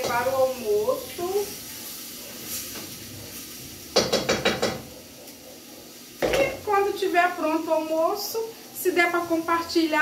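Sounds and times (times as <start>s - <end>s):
gas stove hiss: 0.0s - 10.0s.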